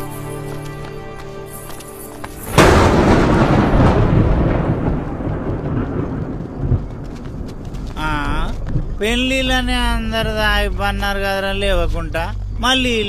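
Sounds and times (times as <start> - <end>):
thunder crash rumbling: 2.5 - 10.8.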